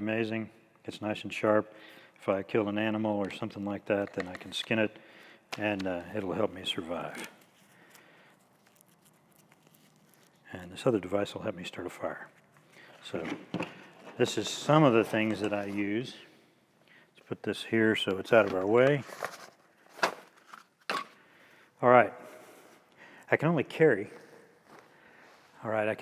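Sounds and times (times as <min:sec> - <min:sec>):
faint clicks of small items: 0:03.2 - 0:04.8.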